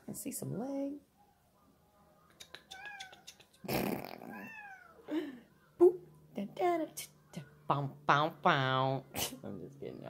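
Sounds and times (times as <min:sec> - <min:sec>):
cat meowing: 0:02.7 - 0:03.3, 0:04.2 - 0:05.1.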